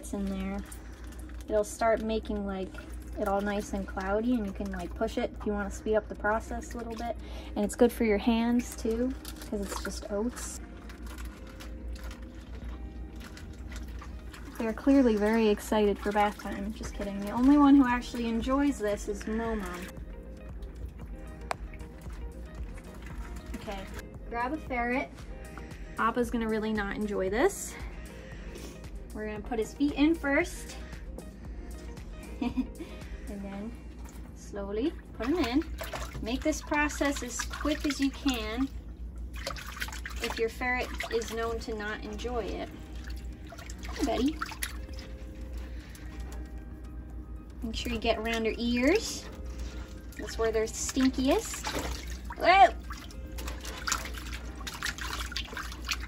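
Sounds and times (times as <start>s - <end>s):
background music: 0.0s - 56.0s.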